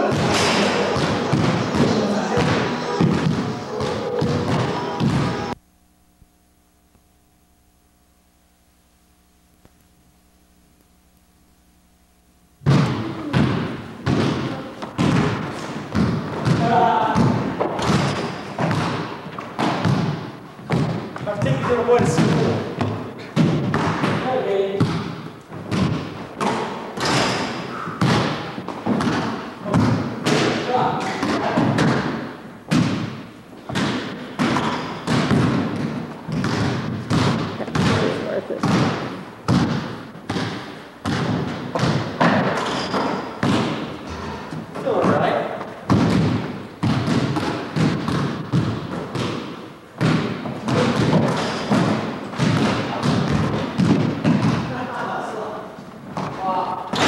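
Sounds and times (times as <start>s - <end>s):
players' voices: 0.0s - 5.5s
basketballs bouncing on wood floor: 0.0s - 5.6s, 12.6s - 55.1s.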